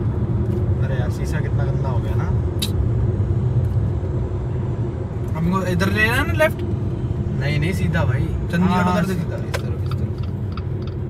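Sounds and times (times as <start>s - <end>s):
engine and tyre noise inside car: 0.0s - 11.0s.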